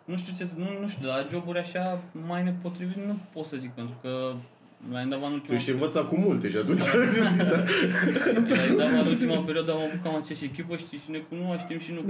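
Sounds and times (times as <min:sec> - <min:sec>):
men speaking: 0:00.0 - 0:12.0
men chuckling and laughing: 0:06.7 - 0:09.5.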